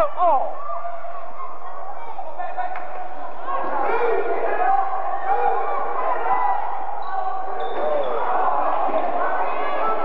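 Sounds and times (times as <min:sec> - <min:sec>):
echoing shouting voices: 0:00.0 - 0:10.0.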